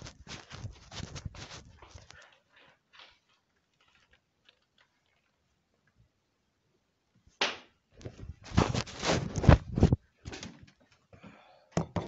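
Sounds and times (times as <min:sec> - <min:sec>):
rustling handling noise: 0:00.0 - 0:05.5, 0:08.0 - 0:10.9.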